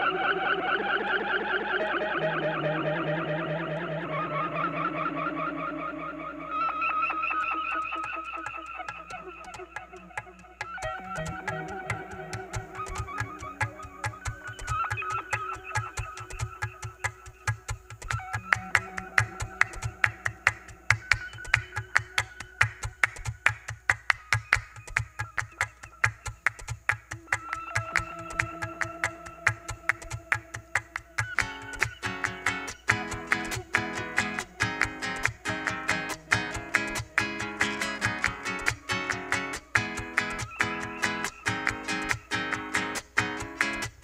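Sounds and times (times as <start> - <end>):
hand claps in syncopated rhythm: 7.1 - 44.0.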